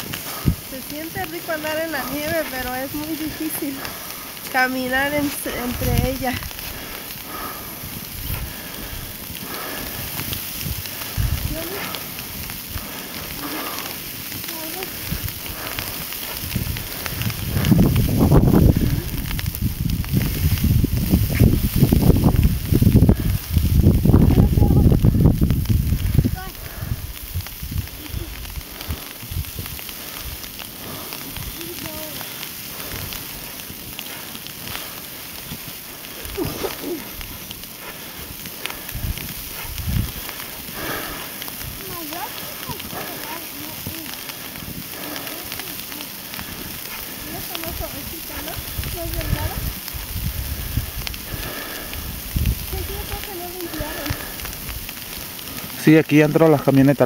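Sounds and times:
footsteps crunching through snow: 0:00.0 - 0:51.9
wind rumble on microphone: 0:00.0 - 0:55.8.

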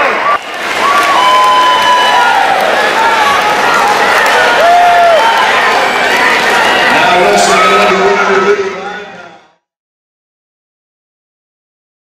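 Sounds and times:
crowd cheering and applauding: 0:00.0 - 0:08.6
people shouting: 0:00.8 - 0:07.9.

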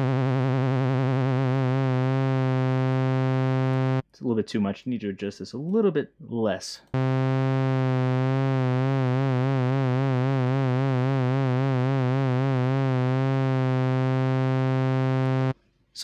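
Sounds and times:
low synthesizer note with vibrato: 0:00.0 - 0:04.0, 0:07.0 - 0:15.6.

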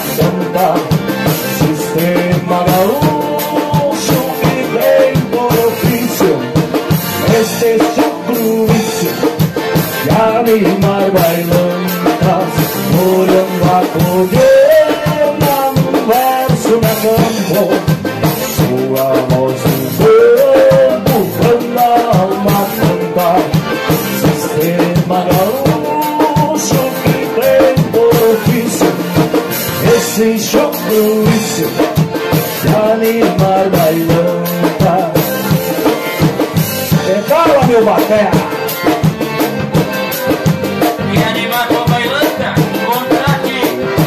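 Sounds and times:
accordions playing melody: 0:00.0 - 0:44.0
acoustic guitar: 0:00.0 - 0:44.0
drum kit beat: 0:00.0 - 0:44.0.

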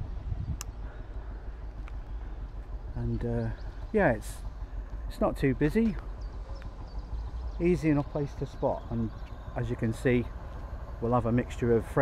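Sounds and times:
low outdoor rumble: 0:00.0 - 0:12.0
faint clicks: 0:01.8 - 0:02.8.

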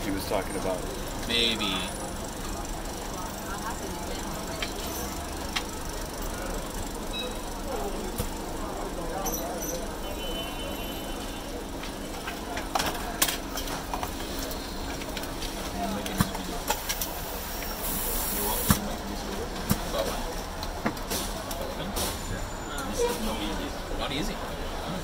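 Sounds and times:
murmur of voices: 0:00.0 - 0:25.0
compressed air hiss: 0:17.3 - 0:18.8.

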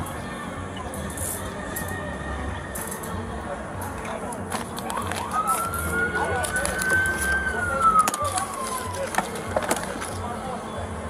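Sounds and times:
siren wailing: 0:04.9 - 0:09.4.

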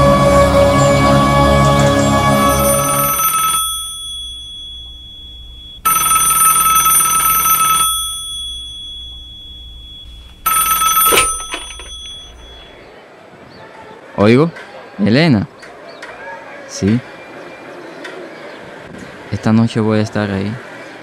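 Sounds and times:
rotary telephone ringing: 0:02.4 - 0:12.7
handset lifting clicks: 0:07.6 - 0:12.6.

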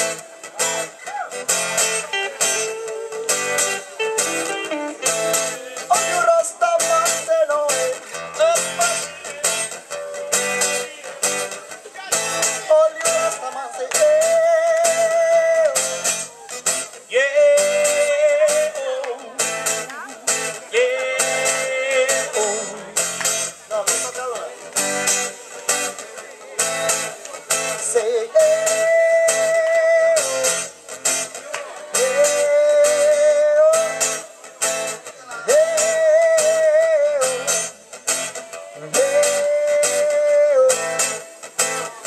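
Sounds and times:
electric guitar: 0:00.0 - 0:42.0
folk band playing: 0:00.0 - 0:42.0
strummed acoustic guitar: 0:00.0 - 0:42.0
lead melody of bending notes: 0:01.6 - 0:05.6.

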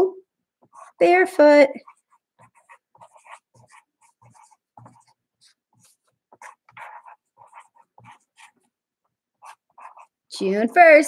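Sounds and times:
marker writing on paper: 0:00.6 - 0:10.2.

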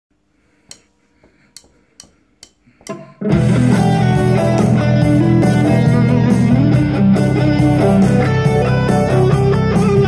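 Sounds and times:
guitar string clicks: 0:00.7 - 0:00.9, 0:01.6 - 0:03.2.

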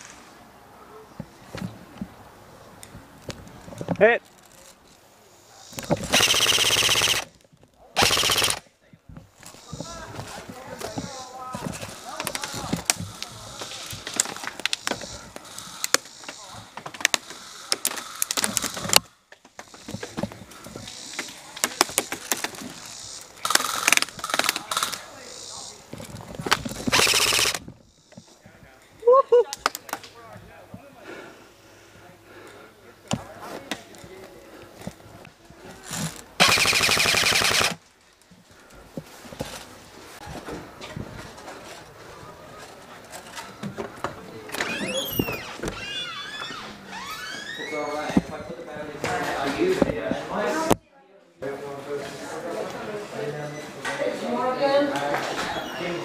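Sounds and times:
airsoft rifles firing: 0:06.0 - 0:07.3, 0:08.0 - 0:08.6, 0:23.4 - 0:25.1, 0:26.7 - 0:27.6, 0:36.4 - 0:37.8.

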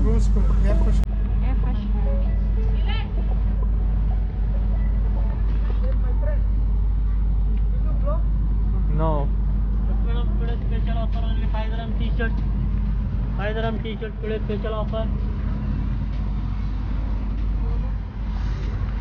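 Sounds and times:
people talking: 0:00.0 - 0:02.0, 0:09.9 - 0:12.4
steady low rumble: 0:00.0 - 0:19.0.

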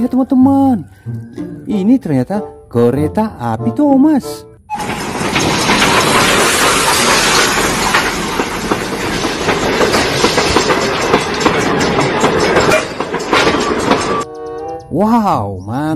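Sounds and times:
train wheels clattering over rails: 0:04.7 - 0:15.0.

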